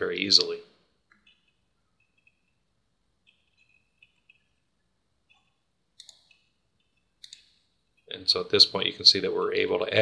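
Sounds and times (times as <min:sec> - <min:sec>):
computer mouse clicks: 0:01.1 - 0:02.6, 0:05.3 - 0:07.6.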